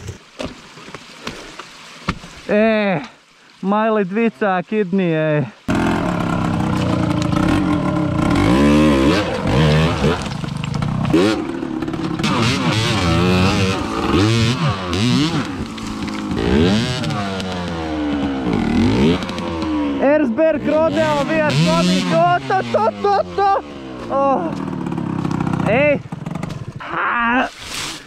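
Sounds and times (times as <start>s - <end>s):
dirt bike engine revving: 5.7s - 26.9s.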